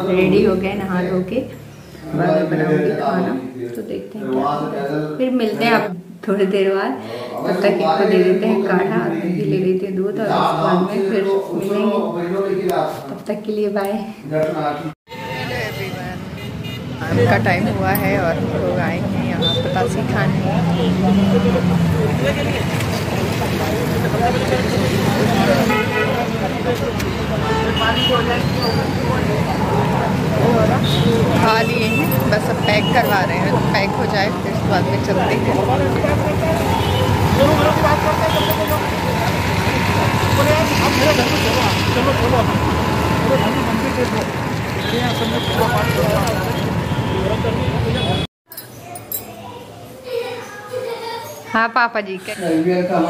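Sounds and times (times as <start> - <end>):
road traffic: 0.0 - 4.6, 15.1 - 50.6
people's voices: 0.0 - 12.0, 15.2 - 53.0
people talking: 2.1 - 16.2, 17.0 - 42.6.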